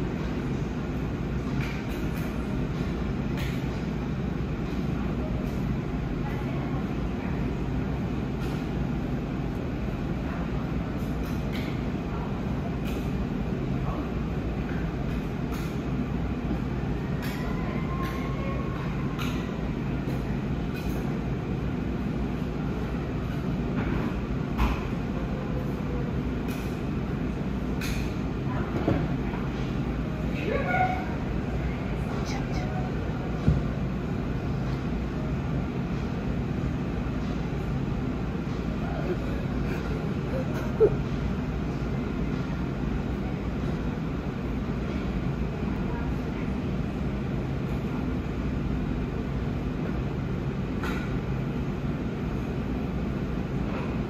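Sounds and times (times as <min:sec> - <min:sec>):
steady low hum: 0:00.0 - 0:54.0.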